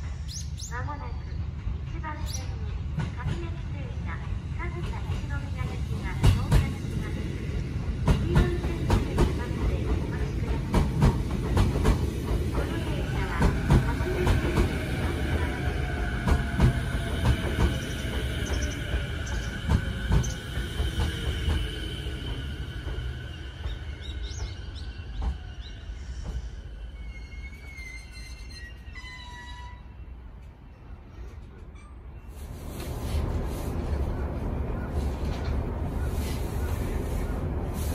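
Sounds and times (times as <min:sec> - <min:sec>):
high brake squeal: 0:26.1 - 0:30.0.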